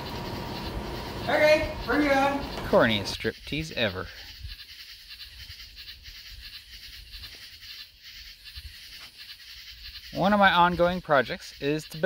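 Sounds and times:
soft outdoor hiss: 0:00.0 - 0:12.0.

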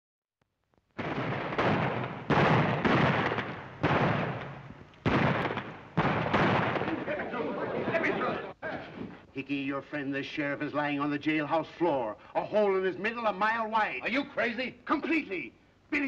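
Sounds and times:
gunshots: 0:00.9 - 0:08.0.

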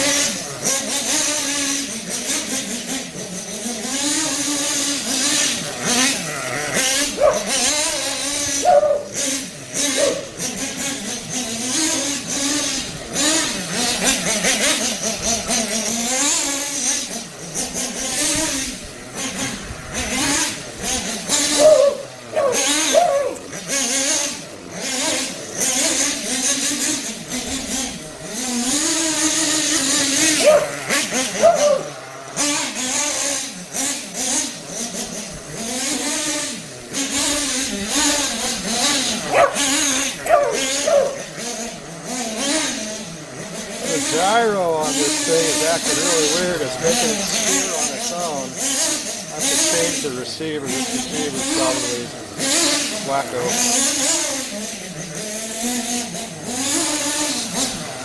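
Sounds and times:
small nitro engine revving: 0:00.0 - 0:58.0.

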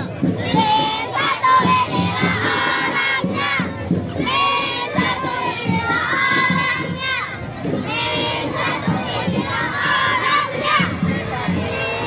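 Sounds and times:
crowd noise: 0:00.0 - 0:12.0
people shouting a chant: 0:00.4 - 0:12.0.

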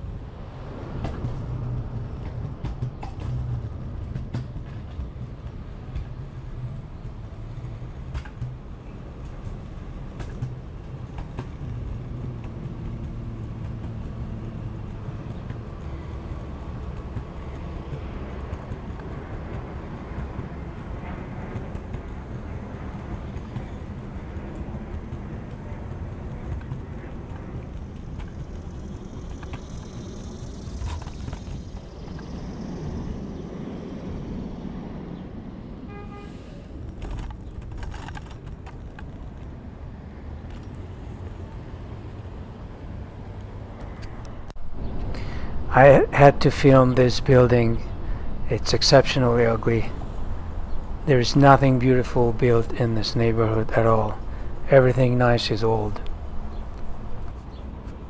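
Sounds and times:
street traffic: 0:00.0 - 0:58.0
scooter wheels rolling on pavement: 0:36.8 - 0:42.6.

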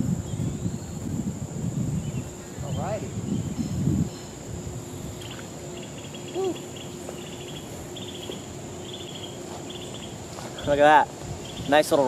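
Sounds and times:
insects chirping in trills: 0:00.0 - 0:12.0
steady high buzz: 0:00.0 - 0:12.0.

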